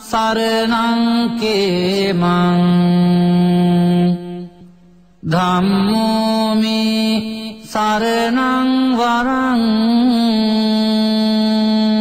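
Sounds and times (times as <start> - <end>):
person chanting: 0.0 - 12.0.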